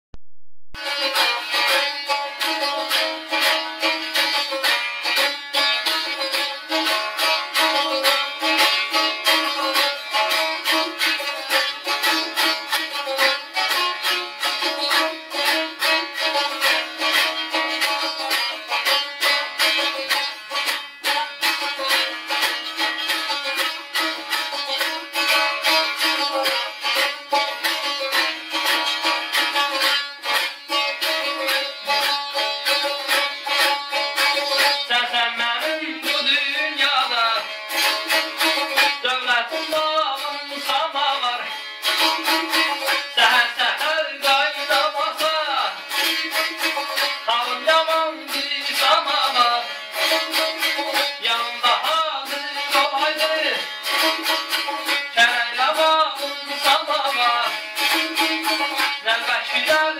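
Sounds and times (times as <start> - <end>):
lute strummed rapidly: 0.8 - 59.9.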